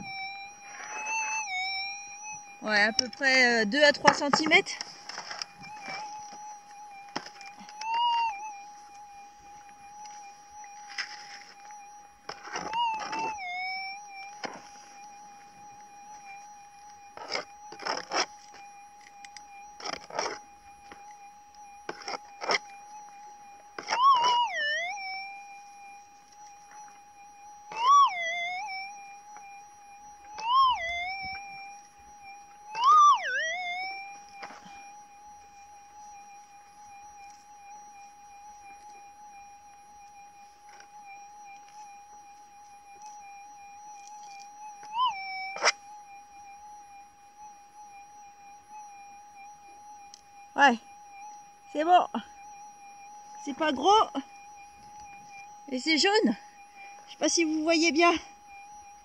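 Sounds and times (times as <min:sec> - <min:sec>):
metal detector humming tone: 0:00.0 - 0:59.0
scratchy digging noises: 0:17.2 - 0:18.6.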